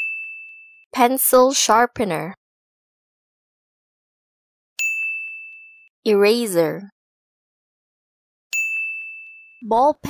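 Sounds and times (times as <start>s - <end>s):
high bell-like ding: 0.0s - 0.8s, 4.8s - 5.9s, 8.5s - 9.6s.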